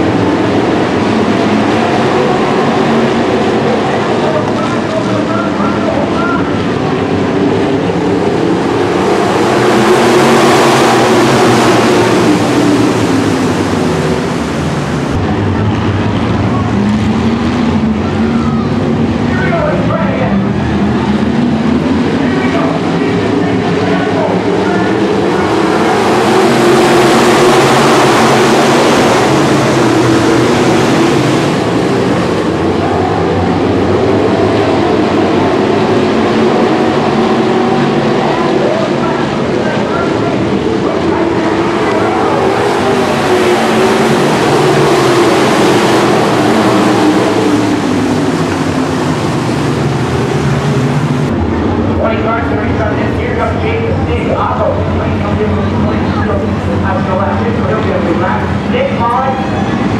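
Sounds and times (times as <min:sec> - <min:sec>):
race car engines roaring: 0:00.0 - 0:59.9.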